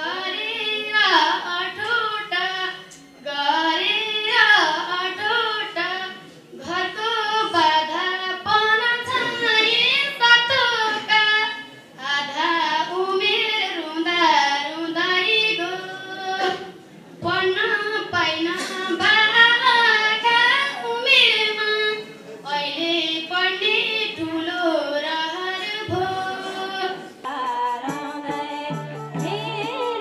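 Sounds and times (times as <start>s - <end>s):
woman singing folk song: 22.6s - 30.0s.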